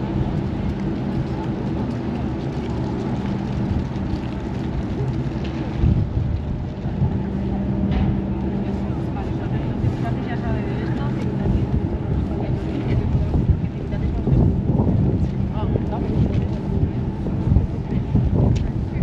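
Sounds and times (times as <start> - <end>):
low engine hum: 0.0 - 19.0
passersby talking: 0.0 - 19.0
wind on microphone: 0.0 - 19.0.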